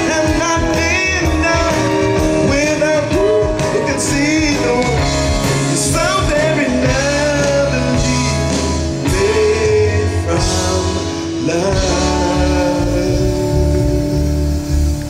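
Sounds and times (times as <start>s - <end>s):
lead singer: 0.0s - 15.0s
live rock band: 0.0s - 15.0s.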